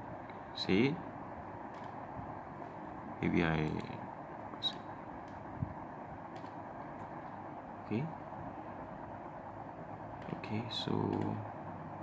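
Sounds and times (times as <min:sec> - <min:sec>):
steady background hiss: 0:00.0 - 0:12.0
computer mouse clicks: 0:01.7 - 0:02.0, 0:03.6 - 0:05.4, 0:06.3 - 0:07.1, 0:10.2 - 0:10.4, 0:11.0 - 0:11.4.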